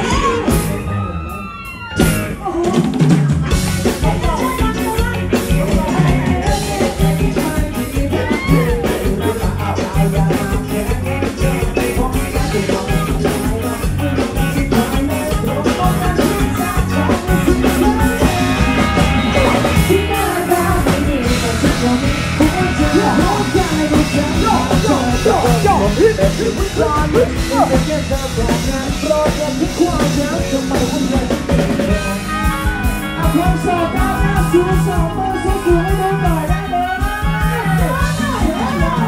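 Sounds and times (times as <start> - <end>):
keyboards: 0.0 - 39.0
live dance band playing: 0.0 - 39.0
drum-kit beat: 2.0 - 39.0.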